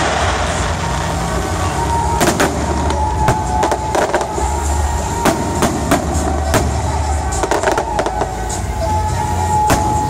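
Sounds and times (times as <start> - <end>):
fireworks bangs: 0.0 - 10.0.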